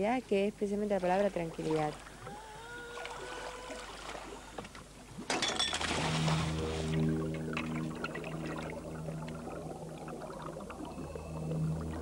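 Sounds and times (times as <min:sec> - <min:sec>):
low wash of noise: 0:05.8 - 0:12.0
faint tone: 0:06.0 - 0:12.0.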